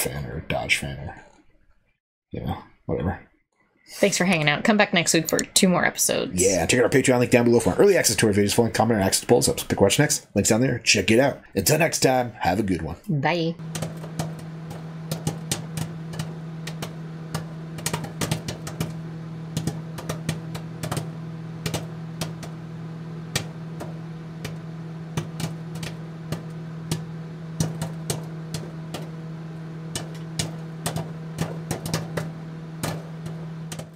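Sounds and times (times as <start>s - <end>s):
low electrical hum: 4.1s - 33.9s
crackling clicks: 13.6s - 33.9s.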